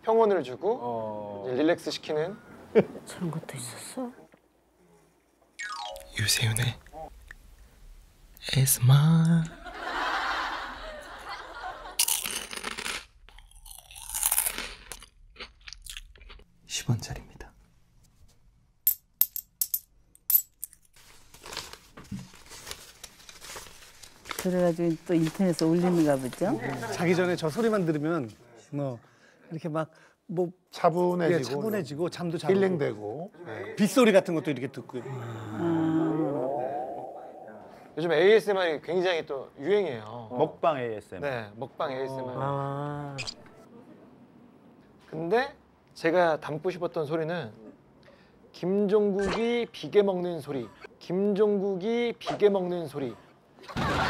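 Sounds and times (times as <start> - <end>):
coins clinking into a palm: 18.9 - 20.8
man's drawn-out vocal: 35.0 - 37.9.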